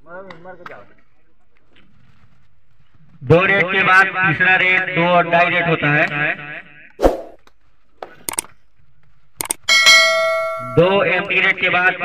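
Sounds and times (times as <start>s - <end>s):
bell ding: 9.7s - 11.1s.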